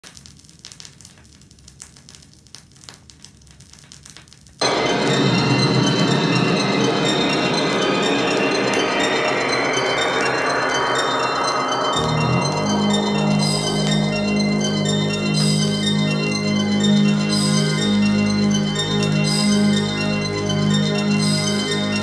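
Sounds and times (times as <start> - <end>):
recorded music from turntable: 4.6 - 22.0.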